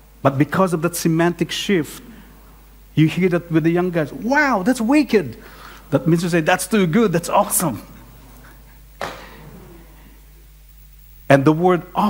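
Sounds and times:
low hum: 0:05.3 - 0:11.3.

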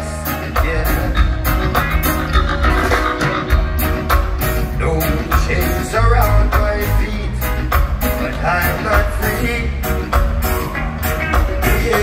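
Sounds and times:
drums keeping a steady beat: 0:00.0 - 0:12.0
electric guitar: 0:00.0 - 0:12.0
heavy bass line: 0:00.0 - 0:12.0
live reggae band: 0:00.0 - 0:12.0.

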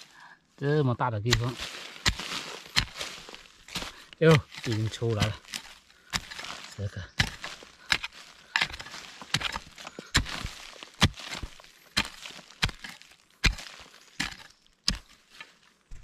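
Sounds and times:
axe chopping into soil: 0:01.2 - 0:15.3.

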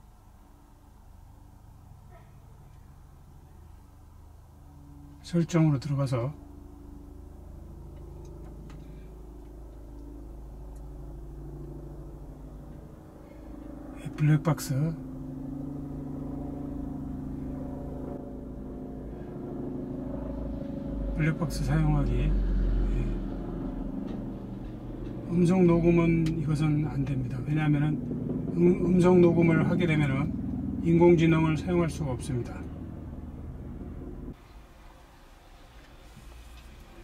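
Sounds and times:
car engine idling: 0:01.2 - 0:37.0.

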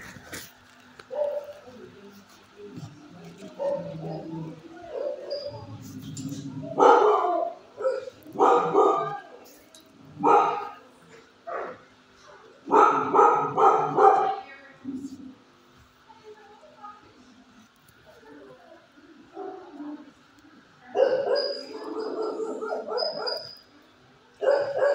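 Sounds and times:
dog barking: 0:01.1 - 0:01.6, 0:03.5 - 0:05.6, 0:06.7 - 0:09.3, 0:10.2 - 0:10.8, 0:12.6 - 0:14.4, 0:20.9 - 0:23.5, 0:24.4 - 0:24.9.

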